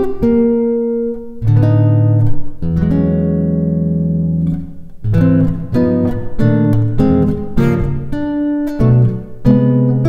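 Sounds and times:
nylon-string guitar chords: 0.0s - 10.0s.

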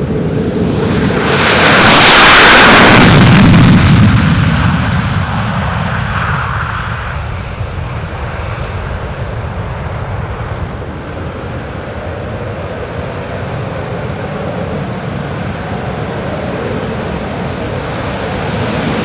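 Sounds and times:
jet afterburner roar passing: 0.0s - 19.0s.

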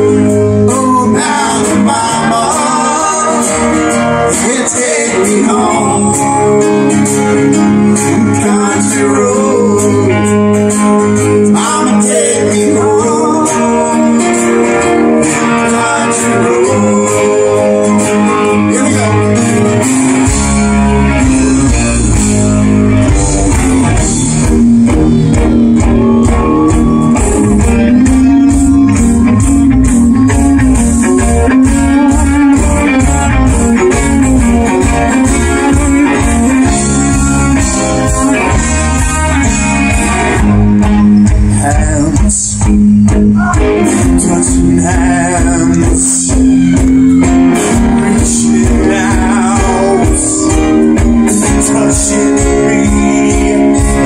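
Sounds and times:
bass guitar: 0.0s - 54.0s
electric and acoustic guitars: 0.0s - 54.0s
steady drum beat: 19.0s - 54.0s.

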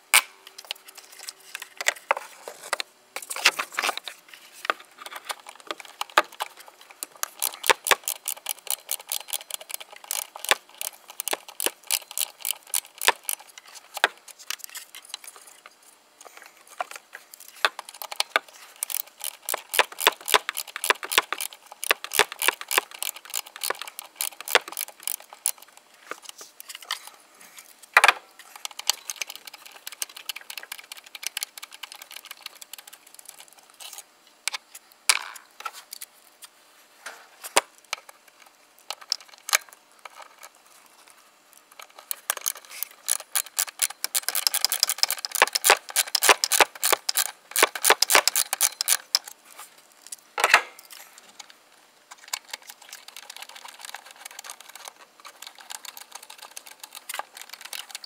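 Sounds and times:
socket ratchet clicking: 7.2s - 14.1s, 17.7s - 25.6s, 42.3s - 49.4s.

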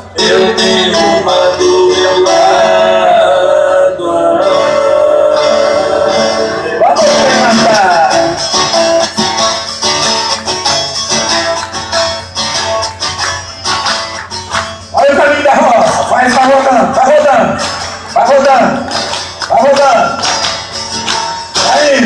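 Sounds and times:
men singing: 0.0s - 8.4s
amplified acoustic guitar: 0.0s - 22.0s.

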